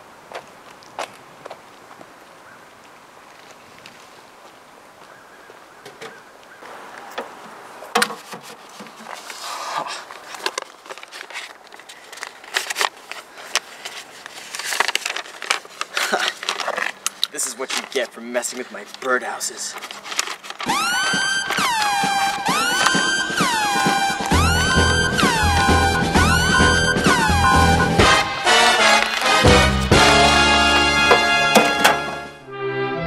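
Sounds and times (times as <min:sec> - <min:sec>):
metal mailbox clicks and knocks: 0:29.9 - 0:32.2.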